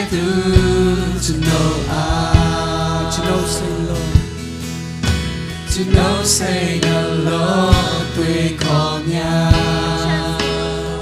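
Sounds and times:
women singing worship song: 0.0 - 4.3, 5.7 - 11.0
band with bass line: 0.0 - 11.0
drum hits: 0.6 - 7.0, 7.7 - 8.2.

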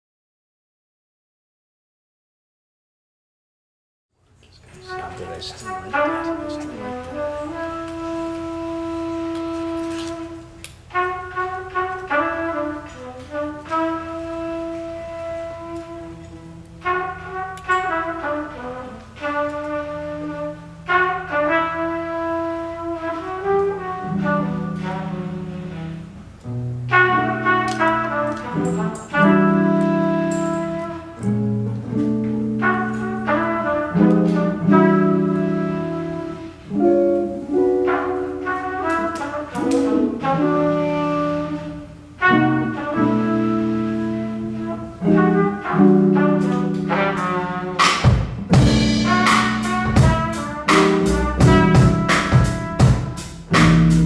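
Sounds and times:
trumpet holding long note: 4.7 - 54.0
electric guitar: 23.5 - 54.0
light drums: 47.8 - 54.0
upright bass: 48.4 - 54.0.

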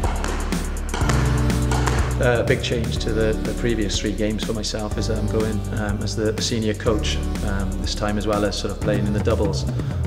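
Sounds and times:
held bass line: 0.0 - 10.0
steady beat: 0.0 - 10.0.

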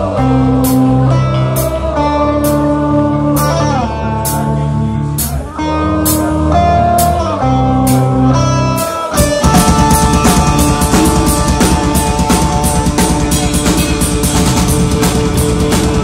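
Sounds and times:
electric guitar sustained chords: 0.0 - 16.0
heavy metal band playing: 0.0 - 16.0.

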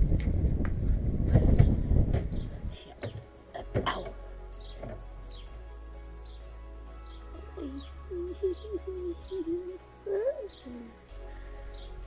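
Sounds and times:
small bird chirping: 7.0 - 11.0
pigeon cooing: 7.6 - 11.0.

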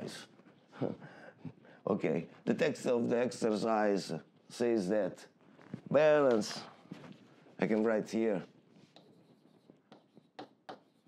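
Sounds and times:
pen writing on a board: 8.8 - 11.0.

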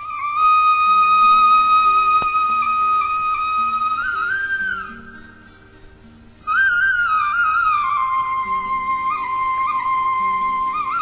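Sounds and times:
flute melody: 0.0 - 11.0.

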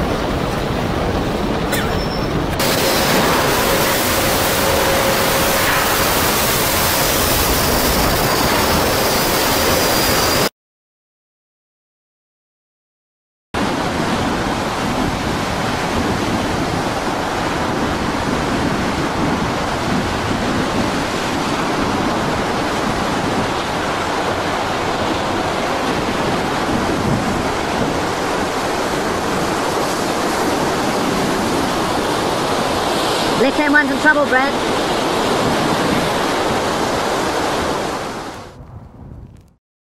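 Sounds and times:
rough sea: 0.0 - 10.5, 13.6 - 38.6
storm wind rushing: 0.0 - 10.5, 13.6 - 33.9, 34.5 - 39.6.

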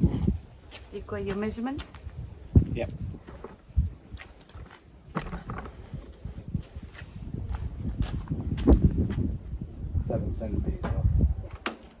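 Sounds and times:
footsteps: 3.2 - 9.3.

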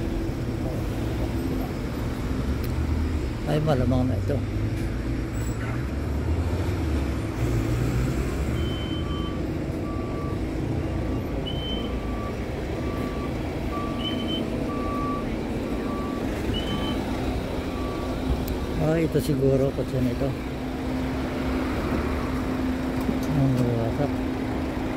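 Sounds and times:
street traffic: 0.0 - 24.9
low idling engine: 7.1 - 24.9
vehicle reversing alarm beeping: 8.2 - 20.4, 21.4 - 24.1.

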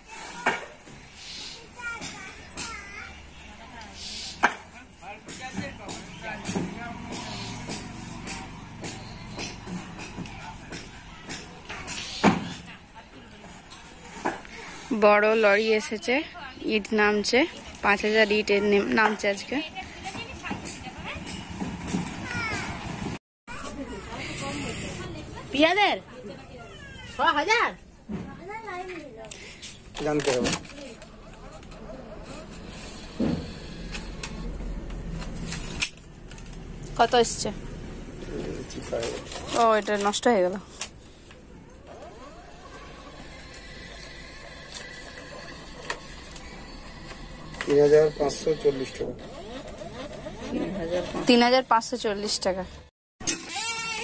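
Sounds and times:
distant voices: 1.6 - 14.8, 30.6 - 52.8
receipt printer whirring: 41.9 - 51.1
short falling cries: 53.4 - 54.0.

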